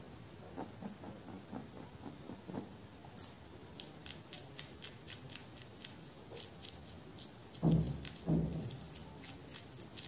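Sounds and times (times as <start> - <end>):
fingernails crackling through hair: 3.8 - 10.0.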